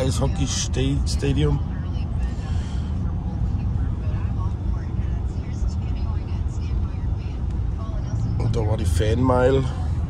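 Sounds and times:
truck engine and tyres rumbling: 0:00.0 - 0:10.0.

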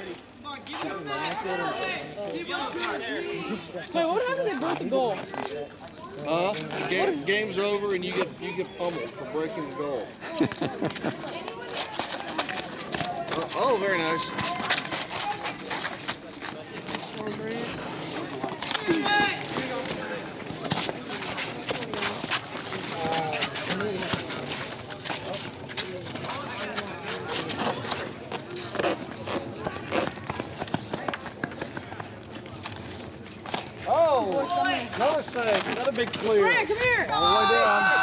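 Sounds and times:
running footsteps: 0:10.2 - 0:38.0
players shouting: 0:18.7 - 0:20.3, 0:36.2 - 0:38.0.

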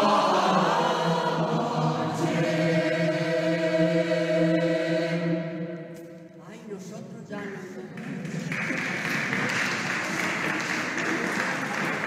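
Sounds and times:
choir singing: 0:00.0 - 0:06.2
crowd applause: 0:08.0 - 0:12.0.

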